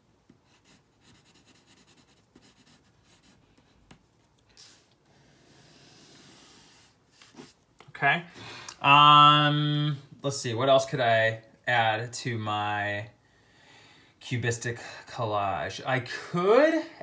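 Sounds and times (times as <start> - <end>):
pencil strokes on paper: 0.4 - 4.0, 4.6 - 7.6.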